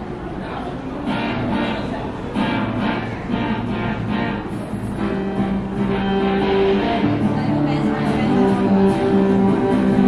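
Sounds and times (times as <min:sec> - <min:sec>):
acoustic guitar chords: 0:01.0 - 0:10.0.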